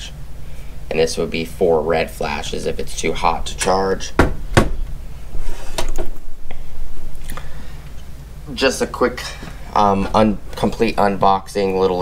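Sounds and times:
rumbling handling noise: 0:01.9 - 0:12.0
quick knocks: 0:04.2 - 0:04.9.

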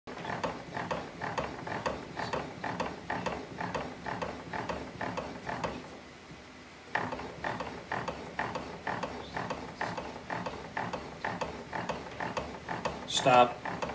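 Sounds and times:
bat rolling machine clicking: 0:00.1 - 0:05.9, 0:06.9 - 0:13.9.

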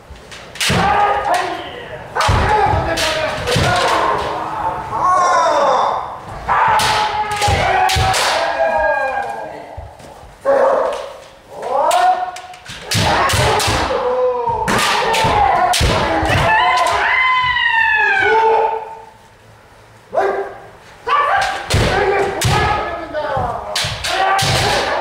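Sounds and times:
people shouting: 0:00.6 - 0:09.8, 0:10.4 - 0:19.2, 0:20.2 - 0:25.0
bamboo swords striking armour: 0:06.6 - 0:08.6, 0:12.7 - 0:14.0, 0:14.7 - 0:17.0, 0:23.7 - 0:25.0.

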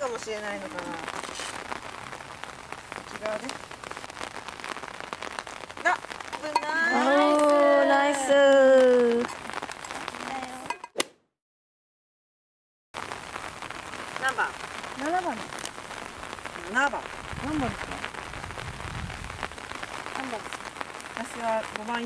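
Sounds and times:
rain falling: 0:00.0 - 0:10.9, 0:13.0 - 0:22.0.

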